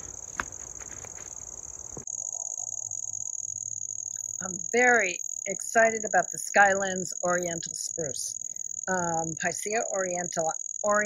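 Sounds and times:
insects chirping trill: 0:00.0 - 0:11.0.

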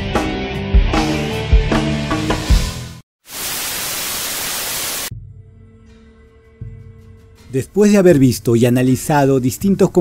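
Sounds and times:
static-like hiss: 0:03.2 - 0:05.1.

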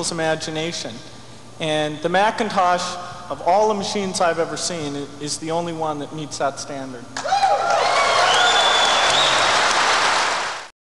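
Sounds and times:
long high whistle: 0:07.2 - 0:09.7
audience applauding and cheering: 0:07.2 - 0:10.7.

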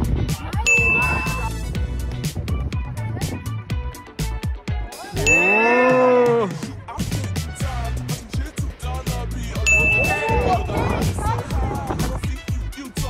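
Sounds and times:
background music with beat: 0:00.0 - 0:13.0
bright ding sound effect: 0:05.2 - 0:06.0, 0:09.7 - 0:10.7.

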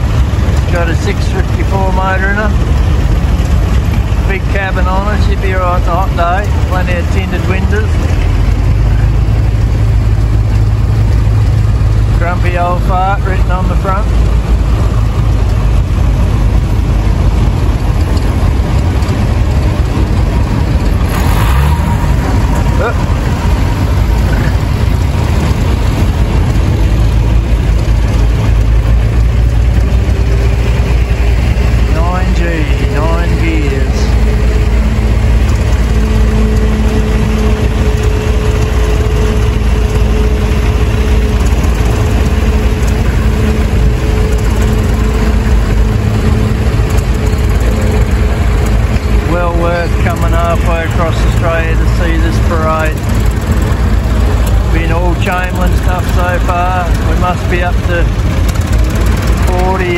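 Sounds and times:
higher engine note: 0:00.0 - 0:59.9
tractor engines rumbling: 0:00.0 - 0:59.9.

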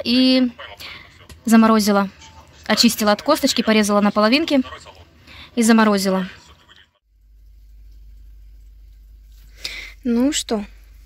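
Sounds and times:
steady low hum: 0:00.0 - 0:11.0
sharp intake of breath: 0:09.4 - 0:10.0.

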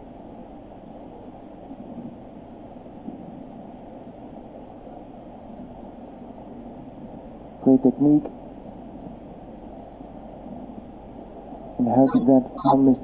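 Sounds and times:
arena background hiss and murmur: 0:00.0 - 0:13.0.

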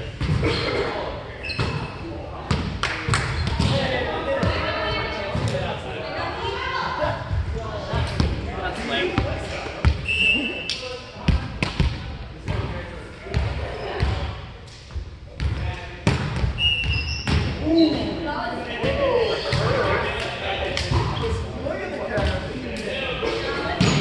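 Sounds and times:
voices: 0:16.6 - 0:24.0.

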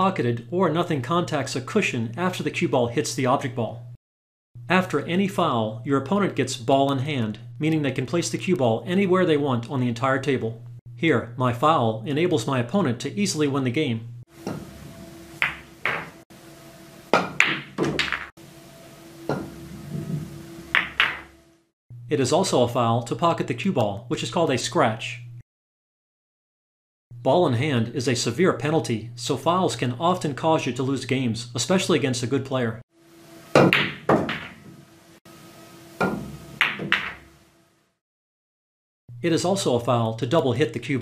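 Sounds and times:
cue striking cue ball: 0:14.4 - 0:16.2, 0:17.1 - 0:18.3, 0:19.2 - 0:21.4, 0:33.5 - 0:34.8, 0:36.0 - 0:37.3
balls knocking into pockets: 0:15.4 - 0:16.2
billiard balls clicking: 0:15.4 - 0:16.2, 0:17.2 - 0:18.3, 0:20.7 - 0:21.4, 0:36.0 - 0:37.3.

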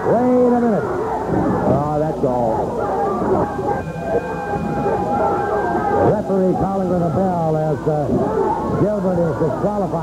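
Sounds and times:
loud crowd noise: 0:00.0 - 0:10.0
ring bell ringing: 0:03.0 - 0:06.0.

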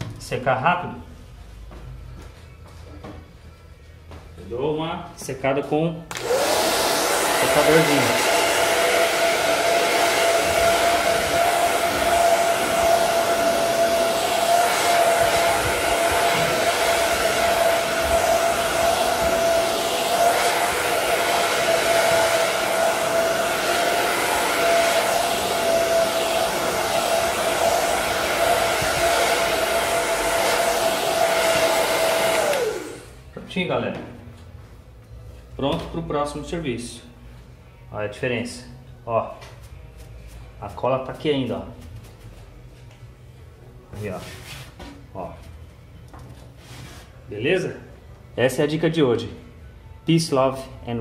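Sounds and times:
hair dryer blowing: 0:06.1 - 0:33.2.

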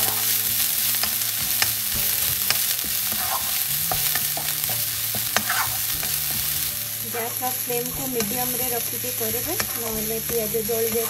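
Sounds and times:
food sizzling in hot oil: 0:00.0 - 0:11.0
spatula scraping and tapping pan: 0:00.0 - 0:11.0.

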